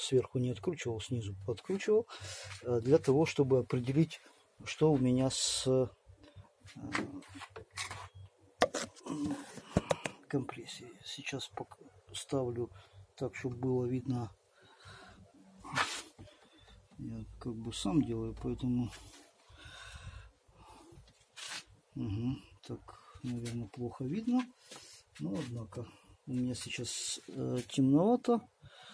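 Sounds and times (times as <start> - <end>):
phone handling rubbing and clicks: 6.8 - 10.2.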